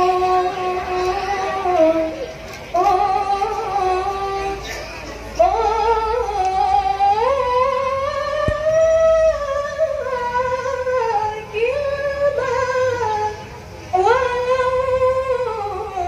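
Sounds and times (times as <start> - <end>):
woman singing slow melody: 0.0 - 4.8, 5.4 - 16.0.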